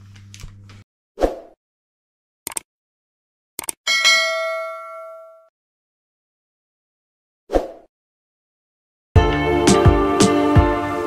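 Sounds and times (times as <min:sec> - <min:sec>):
notification bell ding: 0:03.9 - 0:05.5.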